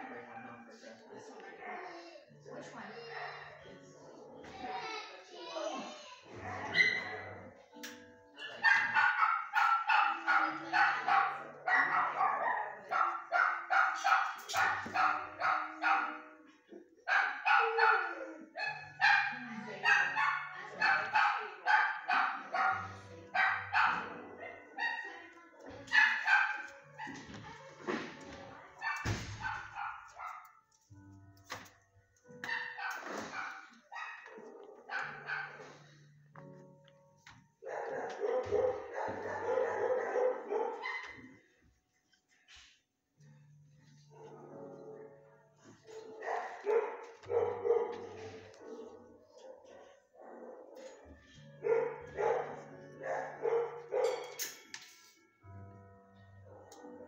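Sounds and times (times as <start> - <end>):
dogs barking: 0.0 - 1.8, 6.3 - 7.6, 8.4 - 28.1, 28.8 - 30.7, 32.3 - 36.0, 37.6 - 41.5, 44.1 - 54.5, 56.4 - 57.0.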